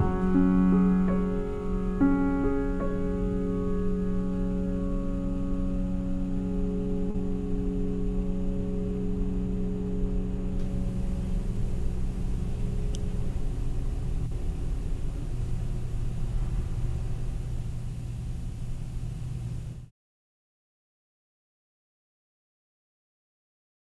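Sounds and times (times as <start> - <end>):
grand piano chord: 0.0 - 17.7
steady low rumble: 0.0 - 19.9.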